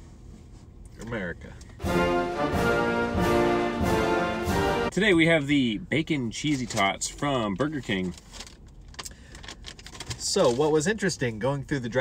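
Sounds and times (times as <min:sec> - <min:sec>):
paper bag crinkling: 0:07.7 - 0:10.7.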